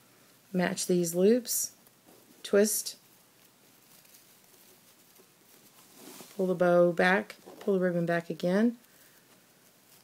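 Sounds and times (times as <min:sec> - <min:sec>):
wire ribbon rustling: 0:00.2 - 0:10.0.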